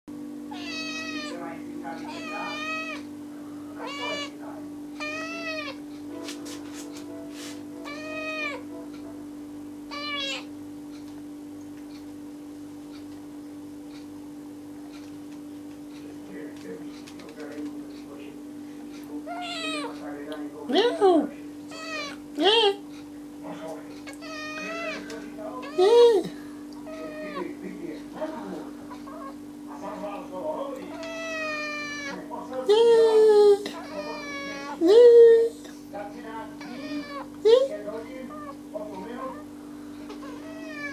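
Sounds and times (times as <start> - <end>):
steady low hum: 0.1 - 40.9
kitten meowing: 0.5 - 1.4, 2.0 - 3.1, 3.8 - 4.4, 5.0 - 5.8, 7.9 - 8.6, 9.9 - 10.5, 19.3 - 19.9, 21.7 - 22.2, 24.1 - 26.3, 26.9 - 27.5, 30.9 - 32.2, 33.7 - 34.9, 36.6 - 37.3, 40.2 - 40.9.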